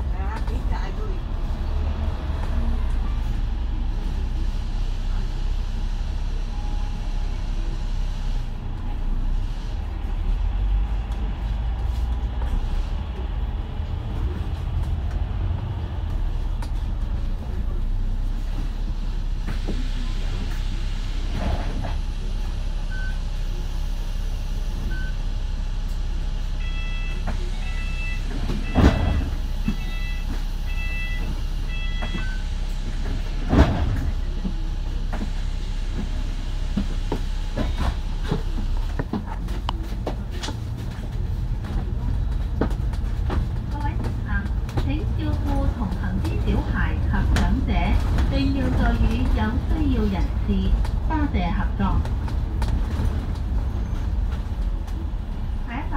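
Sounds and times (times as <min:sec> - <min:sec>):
bus engine idling: 0:00.0 - 0:55.9.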